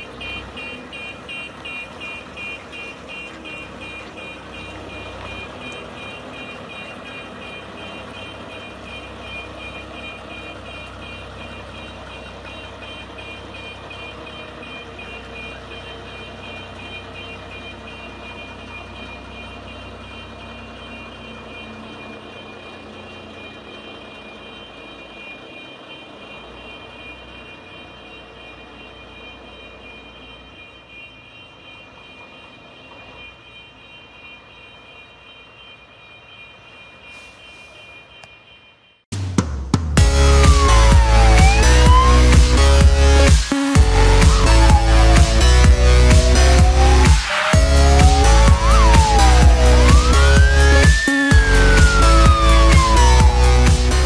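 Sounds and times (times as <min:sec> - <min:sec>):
diesel engine running: 0:00.0 - 0:34.3, 0:39.2 - 0:54.0
reversing alarm beeping: 0:00.0 - 0:39.0, 0:40.0 - 0:54.0.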